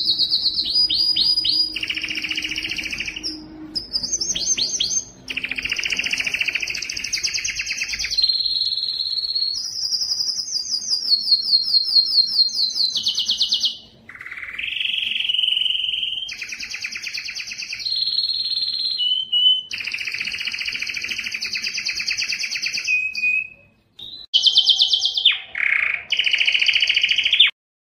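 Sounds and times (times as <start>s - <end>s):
canary singing trills: 0.0s - 27.6s.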